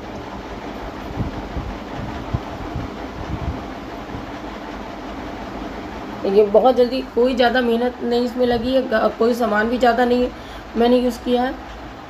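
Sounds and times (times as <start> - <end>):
rushing kitchen background noise: 0.0 - 12.0.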